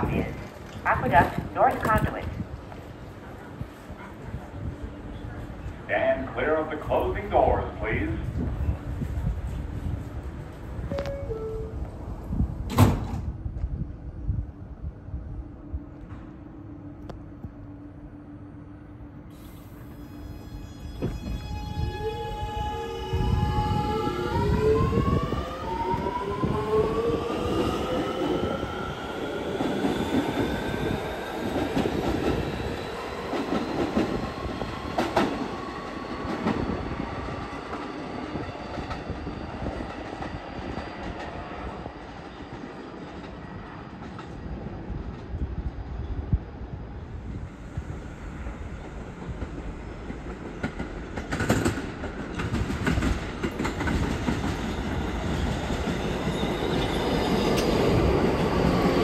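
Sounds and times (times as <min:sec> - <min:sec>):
train rumble and wheel noise: 0:00.0 - 0:59.0
subway traction motor whine: 0:13.3 - 0:50.3.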